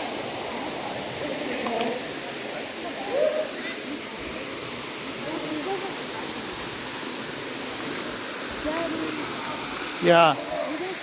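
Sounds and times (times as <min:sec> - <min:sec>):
small waterfall rushing: 0:00.0 - 0:11.0.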